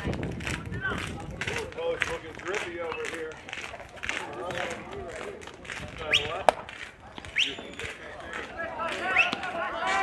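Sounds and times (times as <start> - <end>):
crowd chattering and calling out: 0.0 - 10.0
crowd shout: 8.5 - 10.0.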